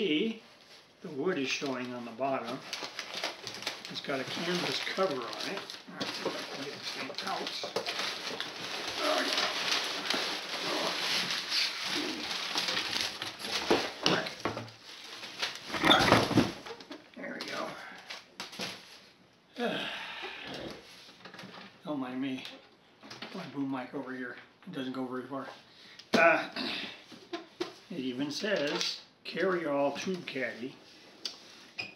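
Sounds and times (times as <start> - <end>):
cardboard and paper rustling: 1.5 - 19.2.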